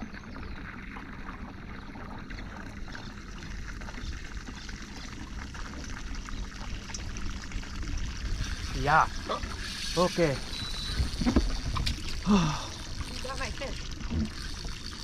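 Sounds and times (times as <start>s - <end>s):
water lapping against boat hull: 0.0s - 15.0s.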